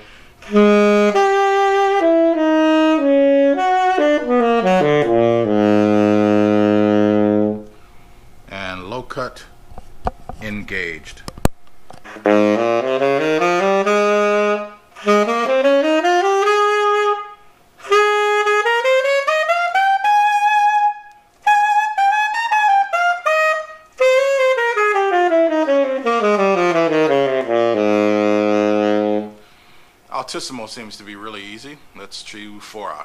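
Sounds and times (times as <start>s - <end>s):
tenor saxophone playing runs: 0.4s - 7.8s, 12.0s - 29.8s.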